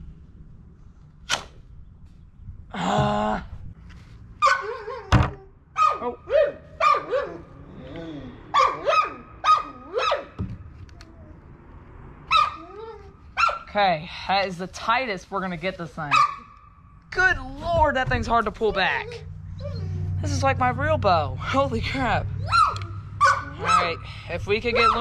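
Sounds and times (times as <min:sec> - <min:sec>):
sharp snap: 0:01.3 - 0:01.6
dog barking: 0:04.4 - 0:05.1, 0:05.8 - 0:07.4, 0:08.5 - 0:10.4, 0:12.3 - 0:12.7, 0:13.4 - 0:13.7, 0:16.1 - 0:16.6, 0:22.4 - 0:24.0, 0:24.8 - 0:25.0.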